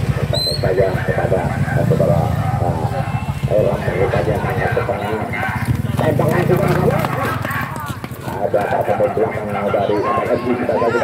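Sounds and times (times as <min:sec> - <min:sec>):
men talking and calling out: 0:00.0 - 0:11.0.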